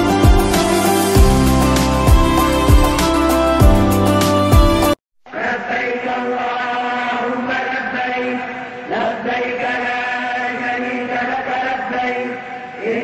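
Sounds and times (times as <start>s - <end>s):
man chanting: 5.3s - 13.0s.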